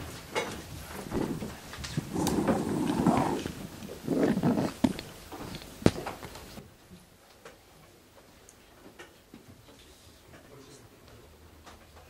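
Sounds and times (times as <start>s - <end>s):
people shuffling and rustling: 0.0s - 7.1s
chairs moving: 0.4s - 6.6s.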